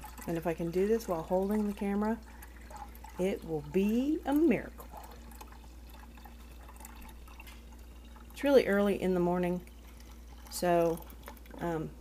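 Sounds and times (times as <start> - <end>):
water trickling into plastic jug: 0.0 - 12.0.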